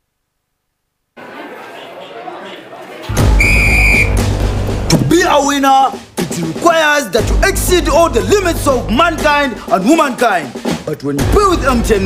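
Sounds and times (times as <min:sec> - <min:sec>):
whistle blast: 0:03.2 - 0:04.3
music with deep bass: 0:04.1 - 0:05.5, 0:07.2 - 0:09.8.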